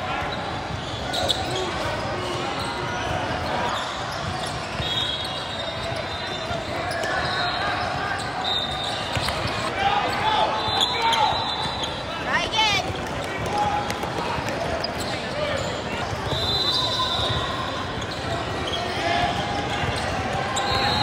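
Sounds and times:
voices of players and spectators: 0.0s - 21.0s
sneakers squeaking: 0.2s - 21.0s
basketball bouncing on court: 9.0s - 9.7s, 12.7s - 16.4s.

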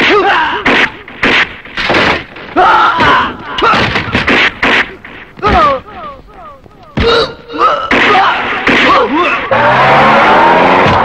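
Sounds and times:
car tyres screeching: 9.3s - 11.0s.

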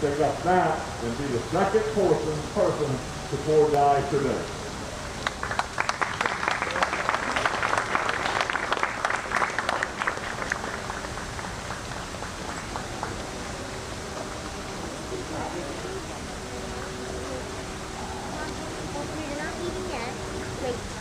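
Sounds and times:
small crowd applauding: 5.2s - 15.9s.

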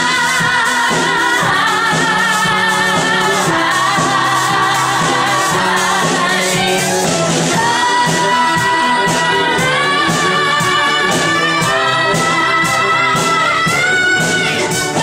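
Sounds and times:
live band playing: 0.0s - 15.0s
woman singing with vibrato: 0.0s - 15.0s.

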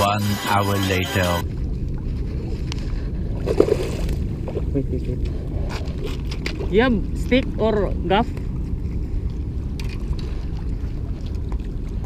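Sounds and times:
man speaking: 0.0s - 1.4s
water sloshing against seawall: 1.4s - 12.0s.

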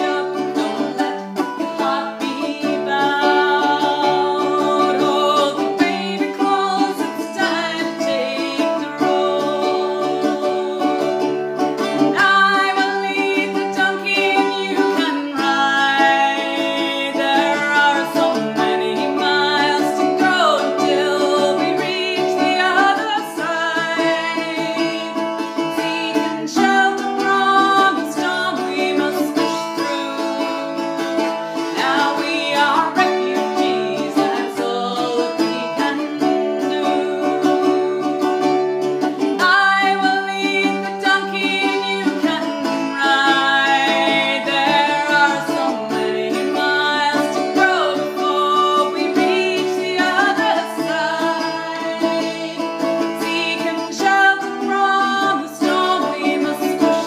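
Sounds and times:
mandola playing: 0.0s - 57.0s
woman singing: 0.0s - 57.0s.

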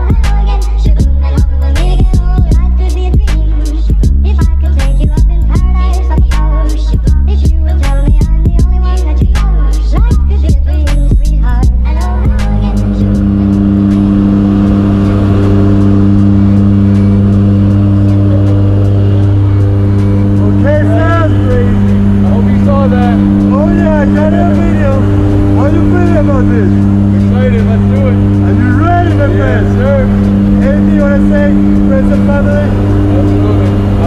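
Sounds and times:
people talking: 0.0s - 34.0s
propeller plane engine drone: 0.0s - 34.0s.

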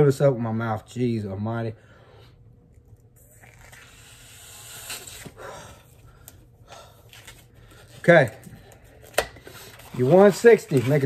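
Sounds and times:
man blowing up balloon: 3.2s - 5.9s.

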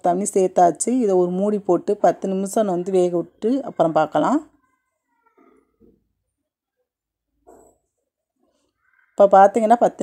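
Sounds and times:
faint pitched cries: 2.7s - 6.0s, 8.6s - 9.6s.

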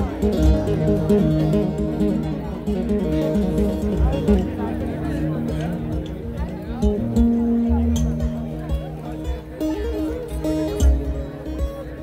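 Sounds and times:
live music with guitar and bass: 0.0s - 12.0s.

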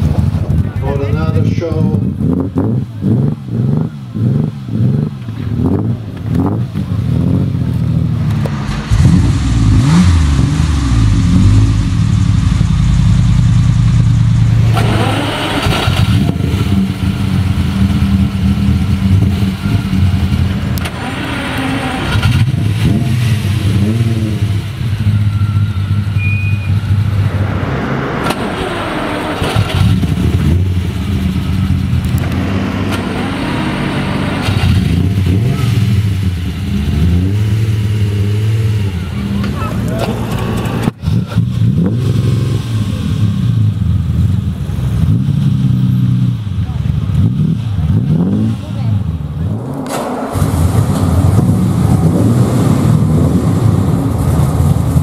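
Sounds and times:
car engine idling and revving: 0.0s - 55.0s.

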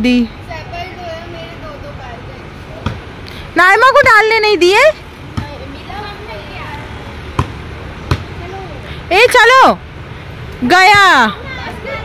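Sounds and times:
basketball bouncing on concrete: 5.3s - 5.6s, 7.4s - 8.3s.

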